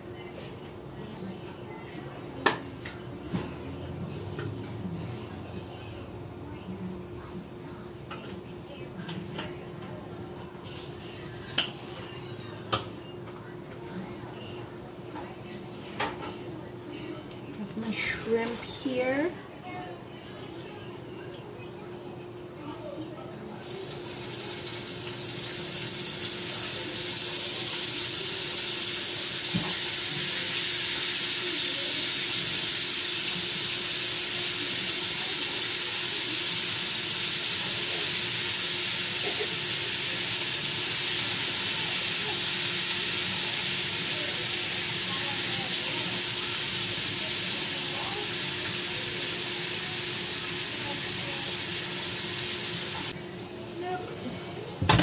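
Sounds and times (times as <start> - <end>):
shrimp sizzling in a pan: 23.6 - 53.2.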